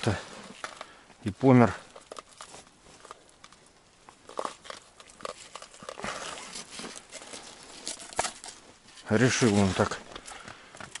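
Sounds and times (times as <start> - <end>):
gloved hands rustling and crinkling: 0.0 - 11.0.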